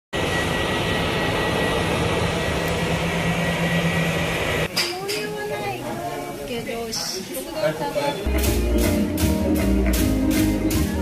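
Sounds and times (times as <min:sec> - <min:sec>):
jet engines taxiing: 0:00.2 - 0:04.7.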